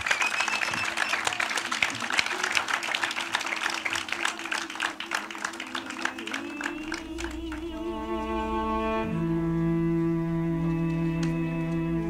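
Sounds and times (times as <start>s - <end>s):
audience applauding: 0.0s - 8.6s, 10.6s - 12.0s
low sustained string note: 7.5s - 12.0s.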